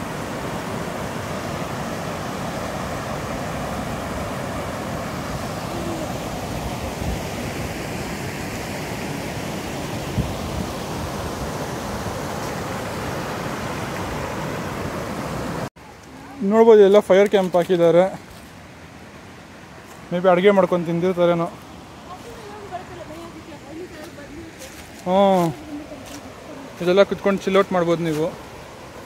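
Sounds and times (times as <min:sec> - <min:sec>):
small waterfall rushing: 0:00.0 - 0:29.0.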